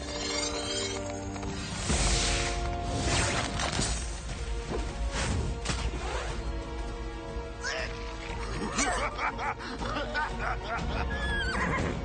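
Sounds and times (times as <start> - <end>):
background music: 0.0 - 12.0
cartoon unicorns whinnying: 11.1 - 12.0.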